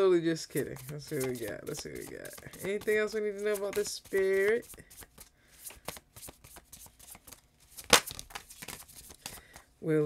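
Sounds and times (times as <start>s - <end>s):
cards shuffled by hand: 0.5s - 9.6s.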